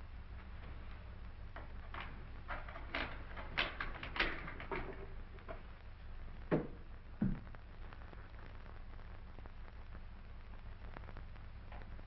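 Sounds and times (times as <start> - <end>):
light clicks and knocks: 0.3 - 5.8, 6.5 - 7.6.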